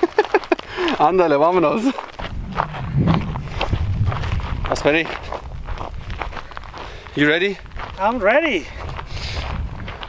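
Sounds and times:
footsteps on gravel: 0:00.0 - 0:10.0
low rumble: 0:02.1 - 0:06.8.

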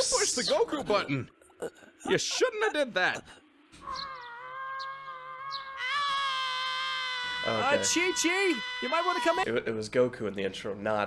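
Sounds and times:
long high-pitched cartoon scream: 0:03.8 - 0:09.5.

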